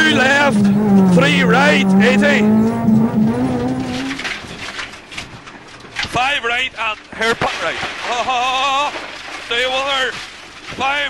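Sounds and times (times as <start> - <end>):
car engine: 0.0 - 5.1
road and tyre rumble: 0.0 - 6.0.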